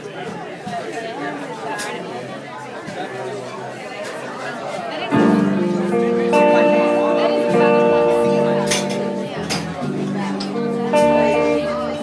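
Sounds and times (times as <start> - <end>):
guitar held chords: 5.1 - 12.0
jazz quartet playing: 5.1 - 12.0.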